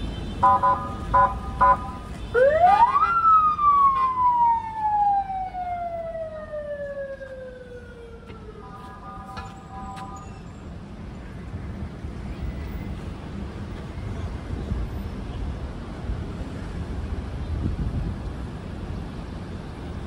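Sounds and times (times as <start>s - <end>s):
faint street traffic: 0.0s - 20.0s
ambulance siren wailing: 0.4s - 10.2s.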